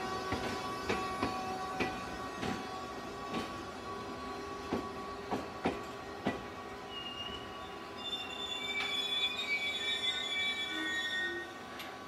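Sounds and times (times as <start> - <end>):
train coaches rolling: 0.0 - 12.0
train wheels squealing: 6.8 - 11.9.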